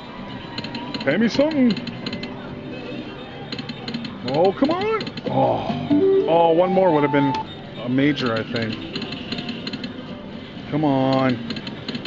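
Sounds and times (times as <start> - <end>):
slot machine game music: 5.8 - 7.5.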